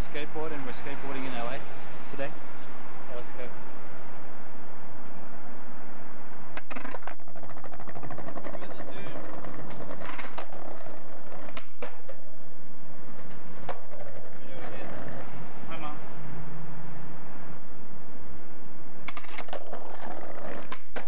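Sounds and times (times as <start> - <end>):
skateboard rolling on concrete: 6.5 - 16.0, 19.0 - 21.0
skateboard clacking on ground: 6.6 - 12.3, 13.1 - 15.2, 19.1 - 21.0.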